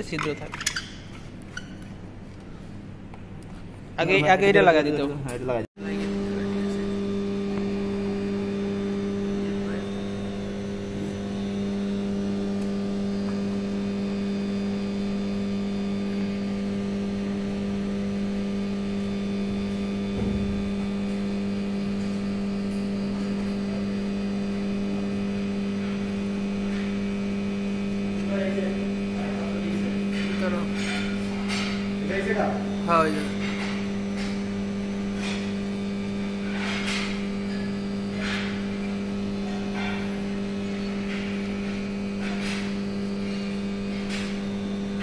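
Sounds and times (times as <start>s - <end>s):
transformer electrical hum: 0.0s - 45.0s.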